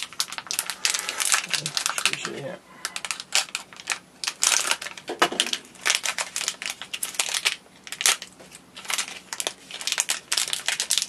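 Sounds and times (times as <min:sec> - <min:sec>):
foil bag crinkling: 0:00.0 - 0:11.0.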